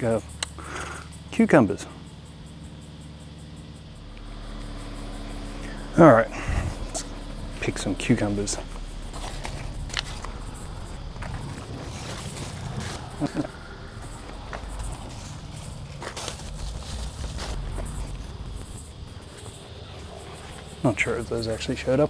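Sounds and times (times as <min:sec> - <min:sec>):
leaves rustling: 0:03.8 - 0:22.0.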